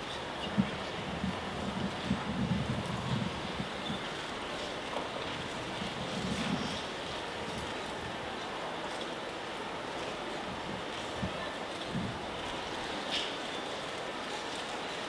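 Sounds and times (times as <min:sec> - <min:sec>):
wind buffeting microphone: 0:00.0 - 0:09.0, 0:10.0 - 0:13.1.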